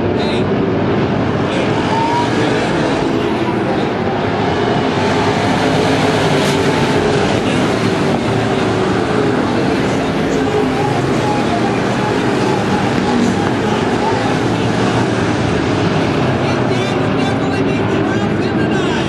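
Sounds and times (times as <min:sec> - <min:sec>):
race car engines droning: 0:00.0 - 0:19.0.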